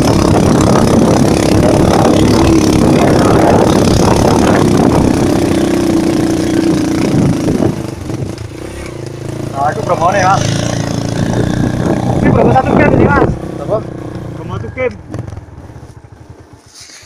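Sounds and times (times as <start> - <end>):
small motorcycle engine under load: 0.0 - 17.0.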